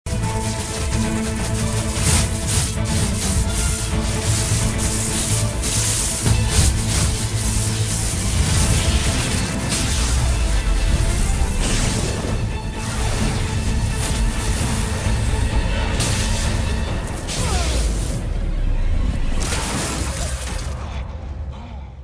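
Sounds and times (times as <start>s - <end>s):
hissing rushing noise: 0.1s - 18.5s
dramatic soundtrack music: 0.1s - 22.0s.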